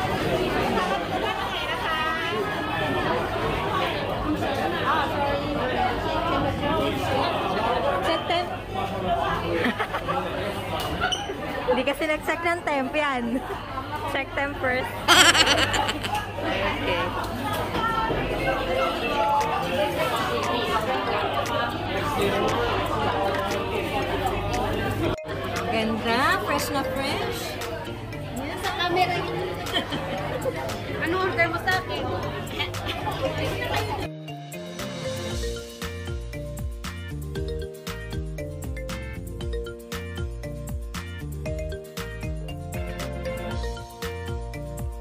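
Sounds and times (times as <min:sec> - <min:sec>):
babble of overlapping voices: 0:00.0 - 0:16.3, 0:17.0 - 0:34.1
diners talking: 0:15.1 - 0:16.2.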